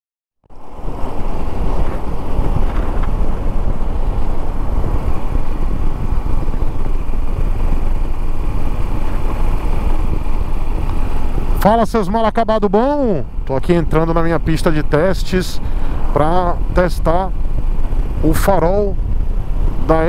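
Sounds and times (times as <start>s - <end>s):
motorcycle engine: 0.5s - 20.0s
wind rumble on microphone: 0.5s - 20.0s.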